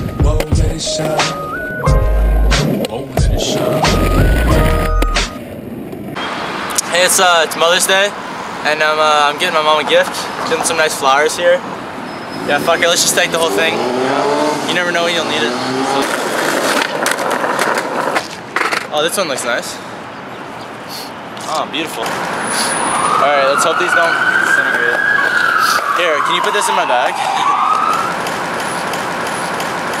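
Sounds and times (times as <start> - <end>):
city traffic: 0.0 - 30.0
siren wailing: 3.4 - 5.4, 22.7 - 28.2
skateboard wheels rolling on asphalt: 16.0 - 19.5.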